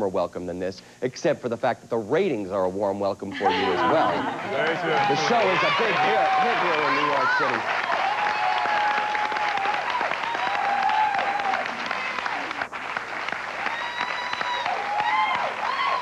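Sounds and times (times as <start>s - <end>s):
audience applauding: 3.5s - 16.0s
whooping cheers: 4.2s - 12.6s, 13.6s - 16.0s.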